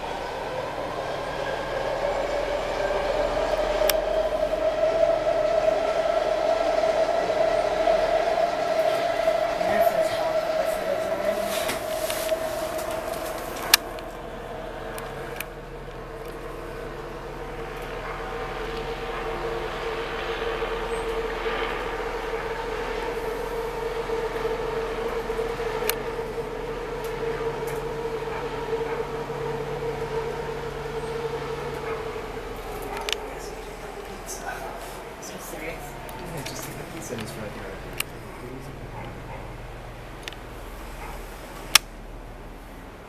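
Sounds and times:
mechanical hum with held tone: 0:00.0 - 0:43.0.

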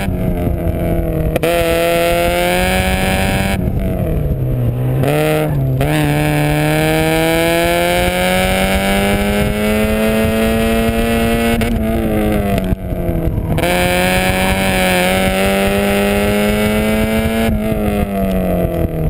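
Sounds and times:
car engine revving: 0:00.0 - 0:19.0.

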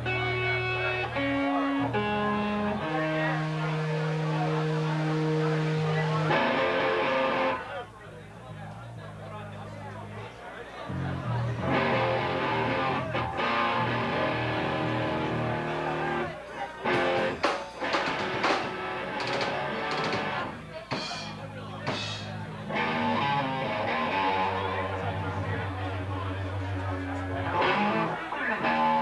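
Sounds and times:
bass guitar line: 0:00.0 - 0:29.0
electric guitar chords: 0:00.0 - 0:29.0.

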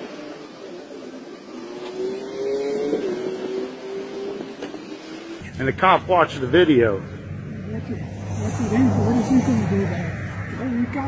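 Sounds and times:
car engine running: 0:03.2 - 0:11.0.

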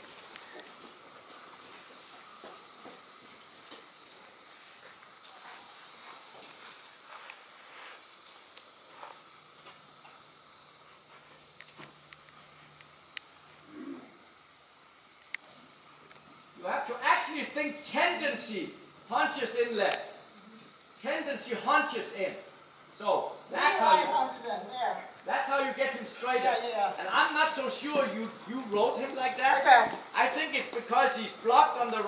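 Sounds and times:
horse trotting on sand: 0:27.0 - 0:32.0.

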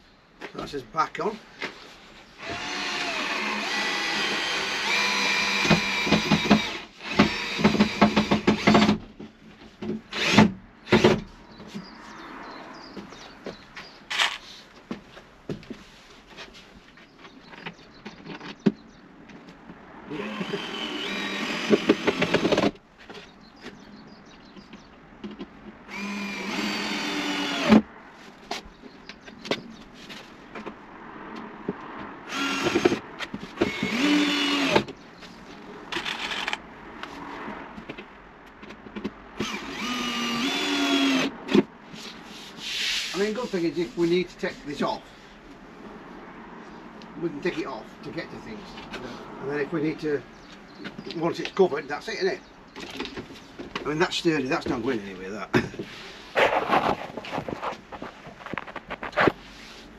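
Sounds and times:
cordless drill driving screws: 0:02.4 - 0:09.0, 0:10.1 - 0:11.1, 0:20.1 - 0:22.8, 0:25.9 - 0:27.8, 0:32.3 - 0:33.0, 0:33.6 - 0:34.9, 0:35.9 - 0:36.6, 0:39.4 - 0:41.3.

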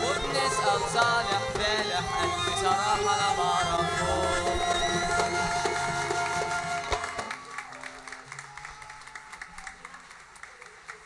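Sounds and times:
applause: 0:05.2 - 0:11.0.

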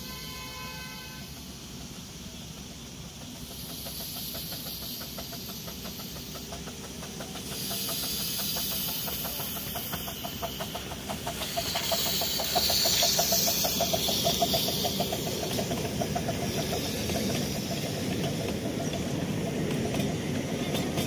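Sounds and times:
steam hiss: 0:00.0 - 0:21.0
steam locomotive passing: 0:00.0 - 0:21.0.

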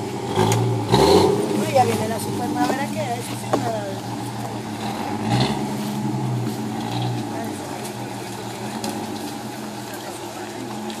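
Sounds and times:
car engine running at low revs: 0:00.0 - 0:11.0.

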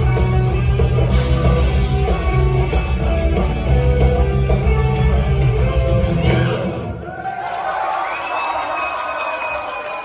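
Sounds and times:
concert crowd cheering: 0:06.0 - 0:10.0.

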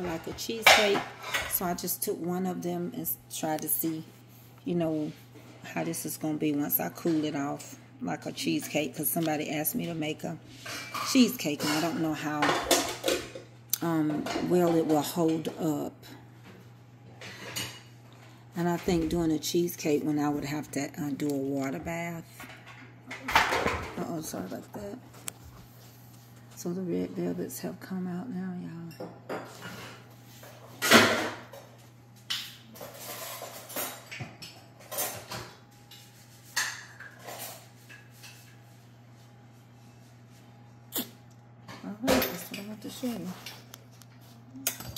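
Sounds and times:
kitchen items clattering: 0:00.0 - 0:02.0, 0:10.6 - 0:15.9, 0:21.6 - 0:25.2, 0:29.0 - 0:38.7.

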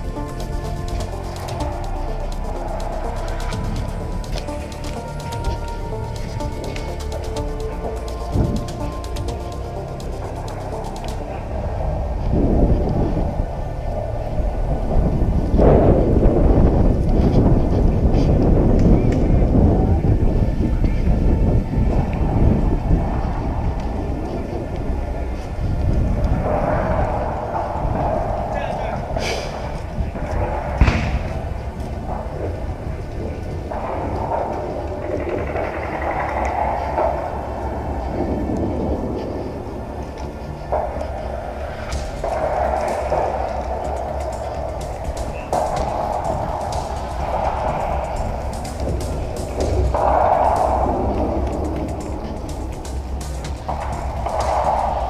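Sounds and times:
indistinct voices: 0:00.0 - 0:55.0
wind buffeting microphone: 0:00.0 - 0:55.0.

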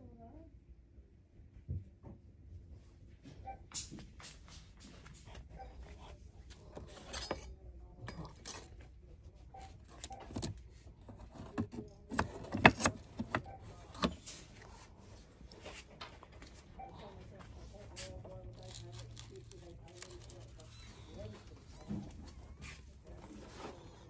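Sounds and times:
low steady store hum: 0:00.0 - 0:24.0.

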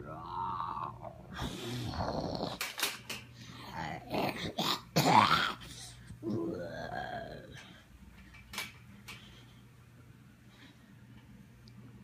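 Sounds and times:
animal-like growling and snarls: 0:00.0 - 0:02.8, 0:03.6 - 0:07.6.

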